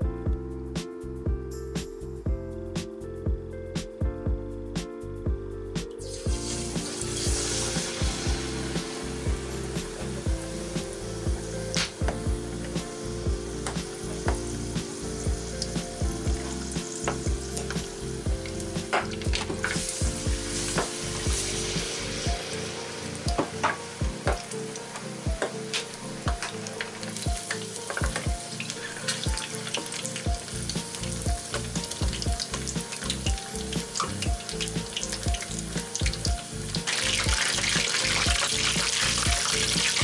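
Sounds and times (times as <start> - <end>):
chicken deep-frying in oil: 6.1 - 40.0.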